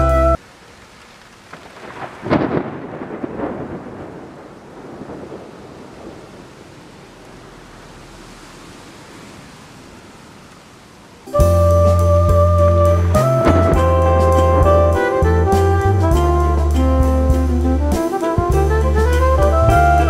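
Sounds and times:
steady rain hiss: 0.0 - 20.0
thunder rumbling: 1.5 - 10.2, 11.3 - 20.0.

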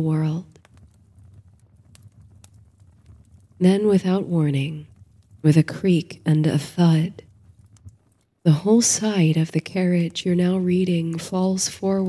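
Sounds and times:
fire crackling and popping: 0.0 - 12.0
low steady rumble: 0.0 - 12.0.

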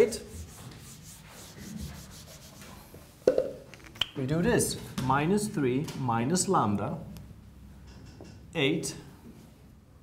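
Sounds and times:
marker scratching on whiteboard: 0.0 - 2.8.

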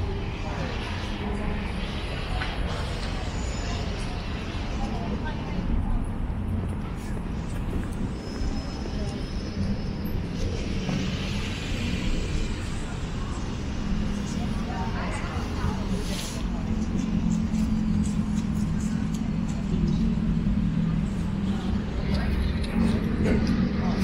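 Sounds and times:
road traffic hum: 0.0 - 24.0
voices of passers-by: 0.0 - 24.0.

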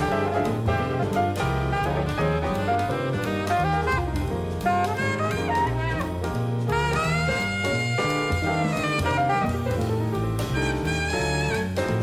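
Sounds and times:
alto saxophone jazz melody: 0.0 - 12.0
drums: 0.0 - 12.0
piano: 0.0 - 12.0
upright bass: 0.0 - 12.0.

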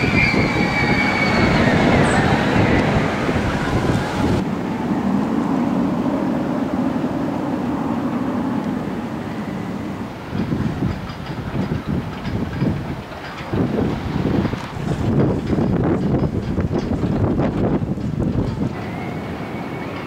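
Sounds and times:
roller coaster rumbling on track: 0.0 - 20.0
wind buffeting microphone: 0.0 - 20.0.

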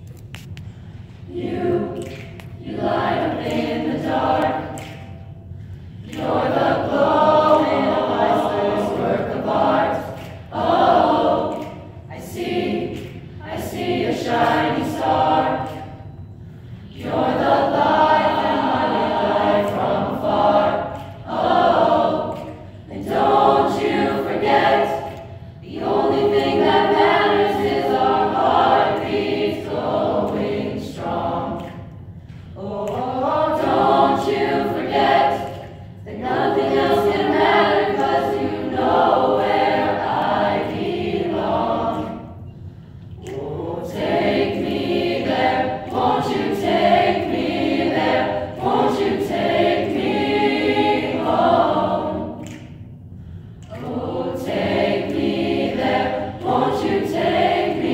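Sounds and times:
choir singing: 1.2 - 52.8, 53.7 - 57.9.

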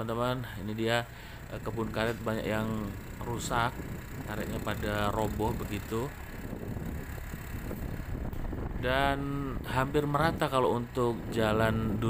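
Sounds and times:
man speaking: 0.0 - 6.2, 8.8 - 12.0
road noise on dirt road: 0.0 - 12.0
wind buffeting microphone: 1.4 - 12.0.

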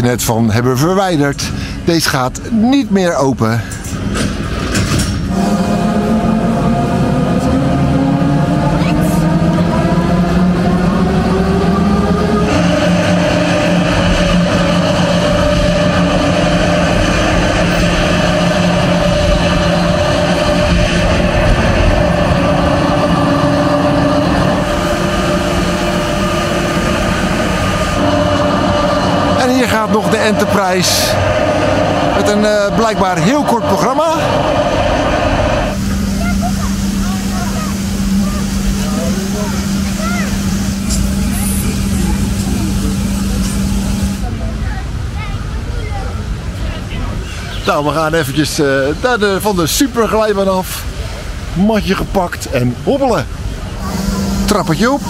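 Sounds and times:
ride drive motors whining: 3.7 - 45.0, 50.8 - 55.0.

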